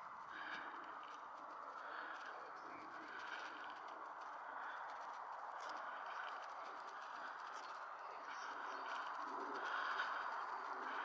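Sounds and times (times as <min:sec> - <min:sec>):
birds calling: 0:07.0 - 0:11.0.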